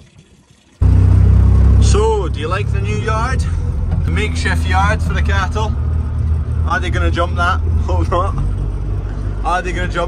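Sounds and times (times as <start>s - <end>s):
diesel engine rumbling: 0.8s - 10.0s.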